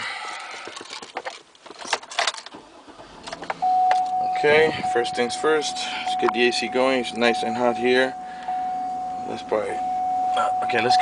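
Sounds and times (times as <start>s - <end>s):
car engine starting: 0.0s - 11.0s
steady single tone: 3.6s - 11.0s.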